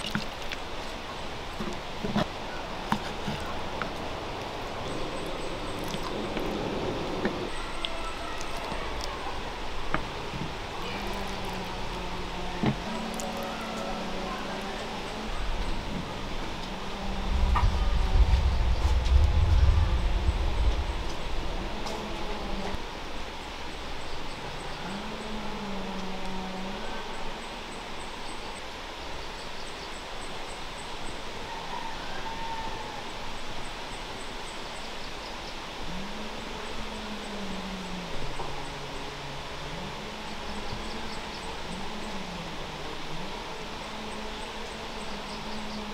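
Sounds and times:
steady hiss: 0:00.0 - 0:45.9
low rising and falling sounds: 0:15.0 - 0:22.8.

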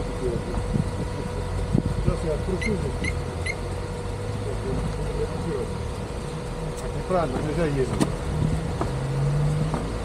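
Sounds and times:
engine running at low revs: 0:00.0 - 0:10.0.

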